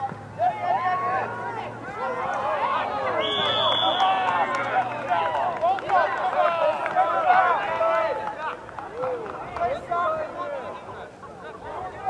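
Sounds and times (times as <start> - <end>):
players shouting: 0.0 - 12.0.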